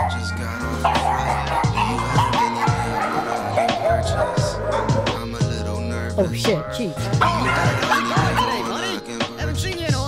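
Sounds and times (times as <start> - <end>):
dog yapping: 0.0 - 5.4, 7.2 - 9.1
background music: 0.0 - 10.0.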